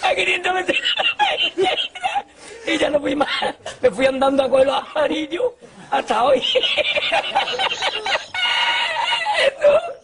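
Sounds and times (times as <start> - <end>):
high-pitched squealing laugh: 6.6 - 10.0.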